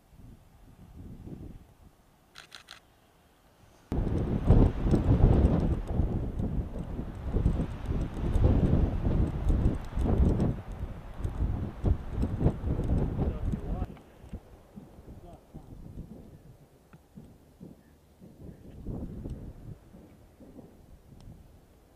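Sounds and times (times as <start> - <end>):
gusty wind buffeting microphone: 0.0 - 2.0, 3.9 - 21.9.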